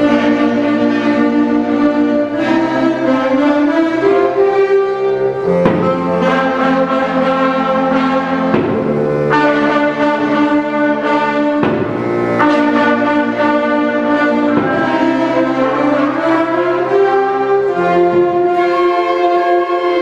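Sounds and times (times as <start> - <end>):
woodwind band playing chords: 0.0 - 20.0.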